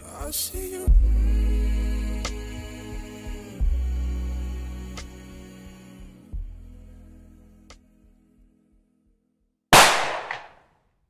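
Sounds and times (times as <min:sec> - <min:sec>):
pistol shot: 0:09.8 - 0:10.6.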